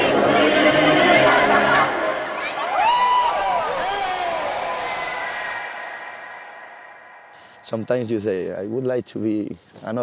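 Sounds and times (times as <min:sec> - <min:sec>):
children singing in chorus: 0:00.0 - 0:02.5.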